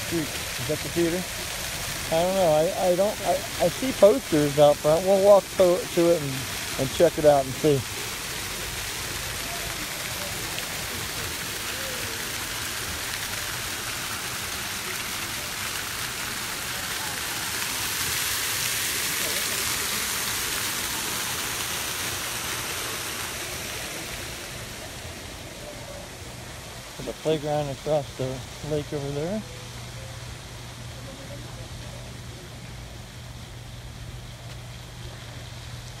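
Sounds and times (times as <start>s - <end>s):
fountain water splashing: 0.0s - 36.0s.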